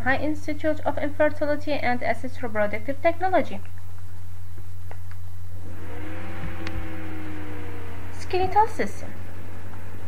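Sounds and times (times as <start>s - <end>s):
steady low hum: 0.0s - 10.0s
motor whirring: 5.6s - 10.0s.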